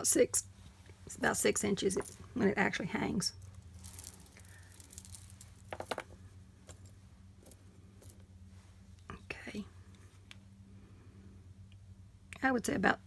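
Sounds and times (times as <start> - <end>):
small clicks and clinks: 3.4 - 8.3.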